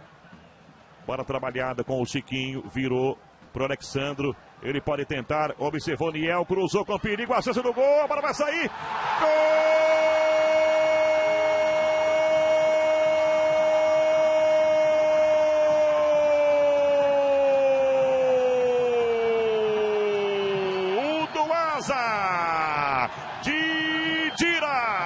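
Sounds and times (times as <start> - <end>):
commentator shouting goal cry: 6.7 - 25.0.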